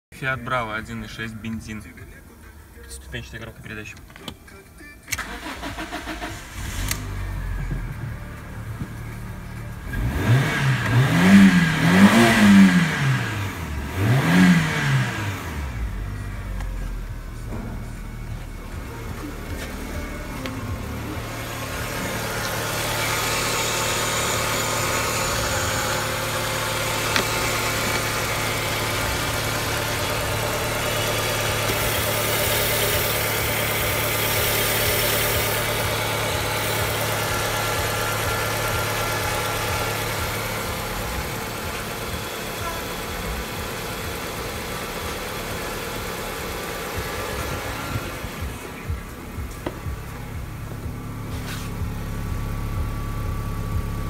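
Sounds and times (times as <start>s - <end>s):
car engine idling: 0.1s - 54.0s.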